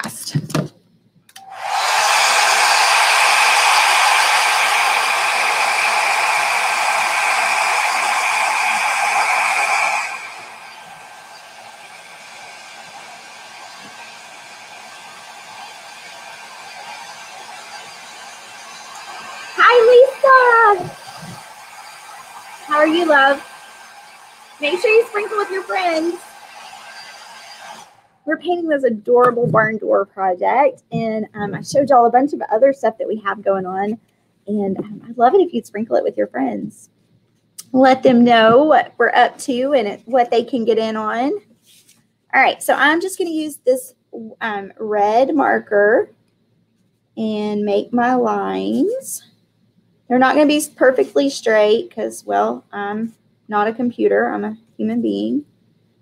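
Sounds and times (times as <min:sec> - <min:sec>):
hair dryer blowing: 0:01.3 - 0:28.2.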